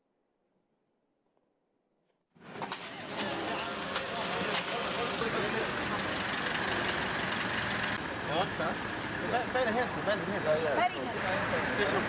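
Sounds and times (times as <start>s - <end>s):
car engines running: 2.4s - 12.0s.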